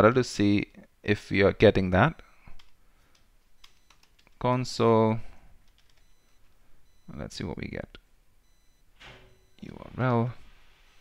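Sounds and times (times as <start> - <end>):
keyboard typing clicks: 2.6 - 4.4, 5.6 - 6.4
person speaking: 9.6 - 10.5.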